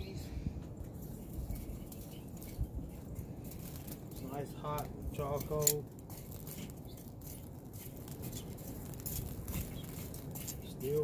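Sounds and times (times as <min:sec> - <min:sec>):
low wind rumble: 0:00.0 - 0:11.0
metal tongs raking charcoal: 0:00.8 - 0:11.0.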